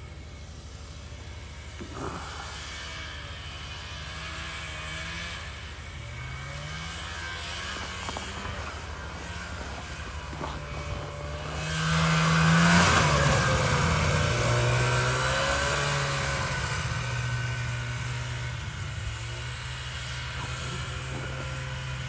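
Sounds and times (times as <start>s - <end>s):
snowmobile engine passing: 0.0s - 22.0s.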